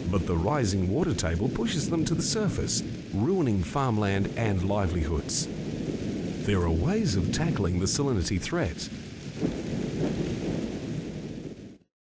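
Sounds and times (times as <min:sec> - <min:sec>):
low thunder: 0:00.0 - 0:11.8
steady rain: 0:00.0 - 0:11.9.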